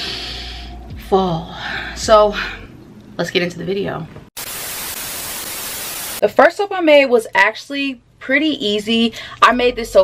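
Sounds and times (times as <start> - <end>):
television static hiss: 4.4 - 6.2.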